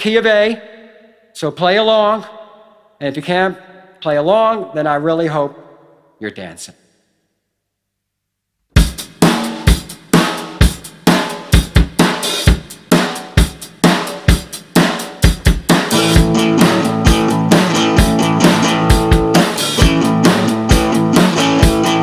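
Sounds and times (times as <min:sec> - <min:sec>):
drum kit rock beat: 0:08.8 - 0:22.0.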